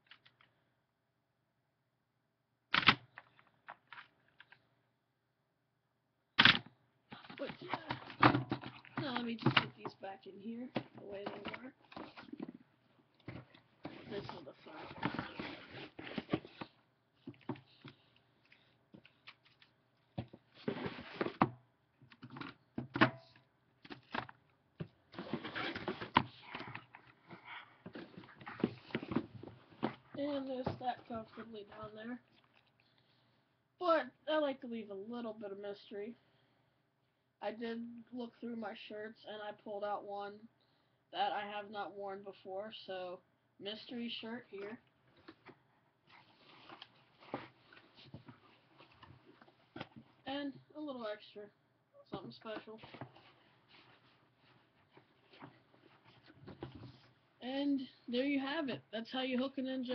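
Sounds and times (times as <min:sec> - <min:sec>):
rustling and scraping: 0:10.8 - 0:21.5, 0:24.0 - 0:32.8, 0:46.1 - 0:50.2, 0:52.5 - 0:57.2.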